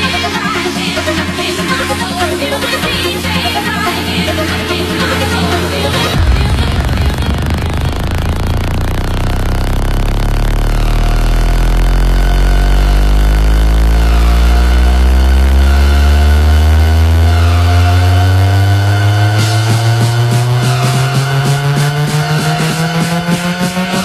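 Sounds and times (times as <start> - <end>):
heavy sustained bass: 0.0 - 24.0
rising tones sweep: 0.0 - 24.0.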